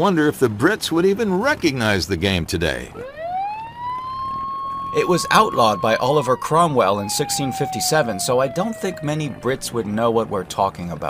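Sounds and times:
siren winding up: 2.9s - 9.9s.

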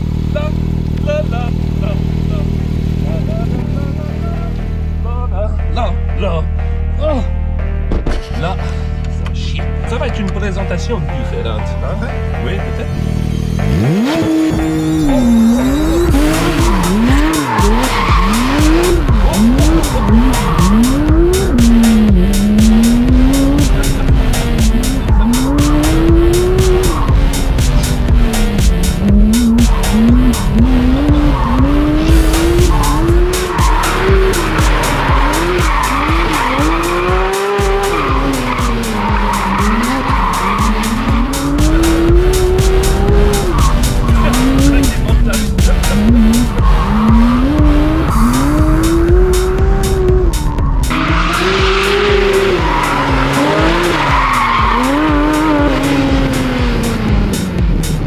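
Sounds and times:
car engine revving: 0.0s - 58.0s
tyres squealing: 13.0s - 56.5s.

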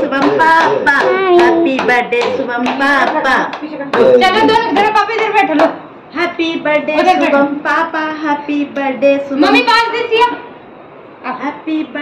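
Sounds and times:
hand claps: 0.2s - 4.1s.

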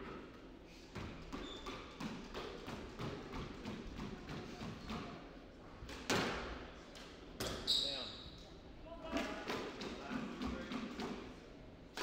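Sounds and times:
shoe squeaking on wooden floor: 1.3s - 2.0s.

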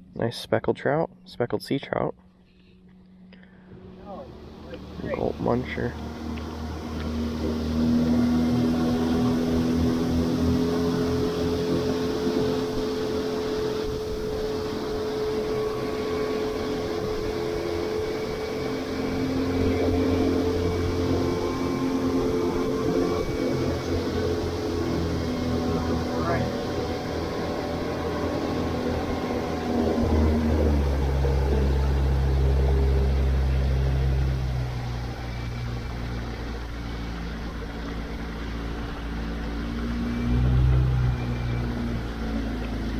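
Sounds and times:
outboard motor humming: 2.0s - 42.9s
rushing water: 3.8s - 42.9s.

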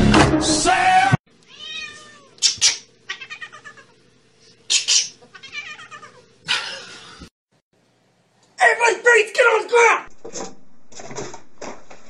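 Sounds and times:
cat meowing and yowling: 1.5s - 2.3s, 3.1s - 3.9s, 5.3s - 6.2s.

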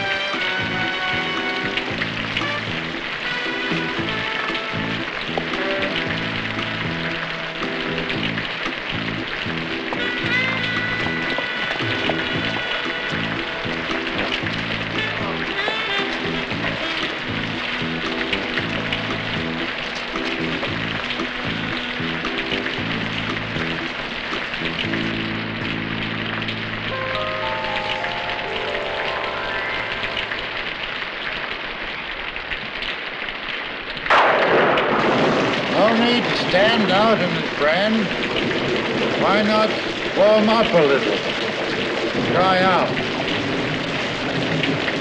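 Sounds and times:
film score music: 0.0s - 32.4s, 34.1s - 45.0s
falling rain: 0.0s - 45.0s.

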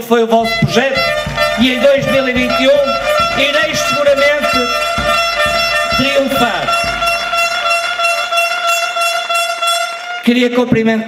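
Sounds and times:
air horns long steady tone: 0.4s - 10.5s.

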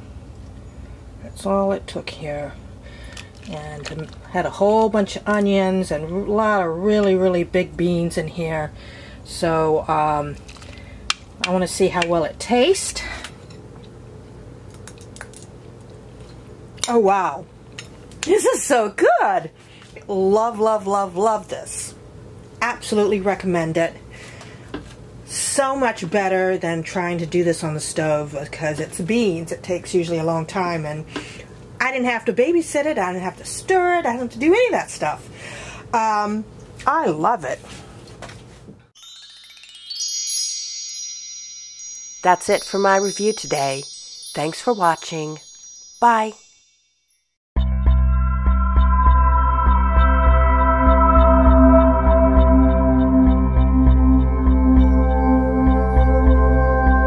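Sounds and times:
rising bell-like chime: 39.0s - 57.0s.

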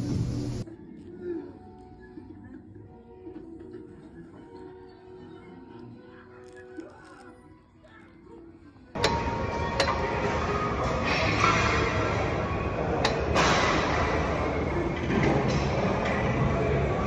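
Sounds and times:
music playing: 9.0s - 17.0s.

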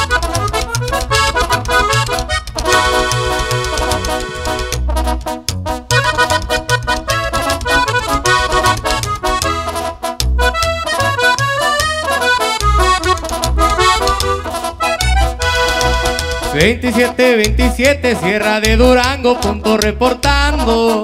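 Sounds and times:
accordion playing fast melody: 0.0s - 21.0s
plucked upright bass: 0.0s - 21.0s
brass alto horns: 2.5s - 21.0s.

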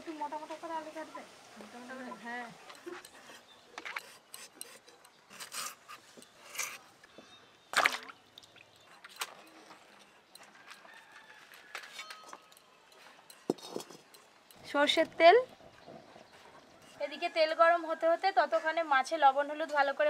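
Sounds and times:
light knocks and clinks: 9.0s - 14.6s.

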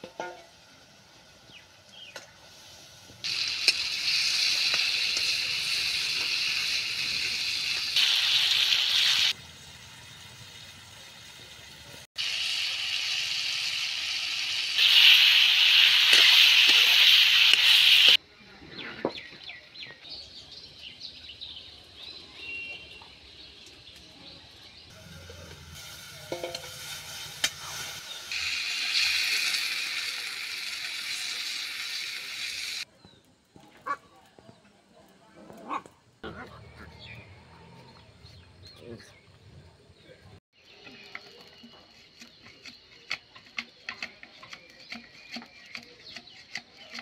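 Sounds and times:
tomatoes sizzling in hot oil: 0.0s - 18.2s, 24.9s - 32.9s.

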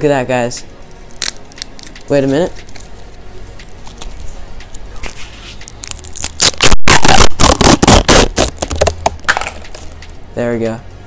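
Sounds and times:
plastic packaging crinkling and tearing: 5.0s - 9.9s.

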